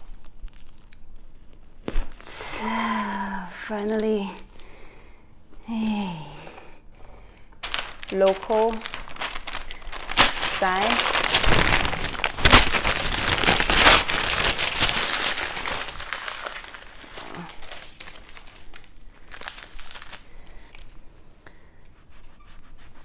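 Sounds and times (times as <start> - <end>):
paper being crumpled by hand: 7.6 - 20.9.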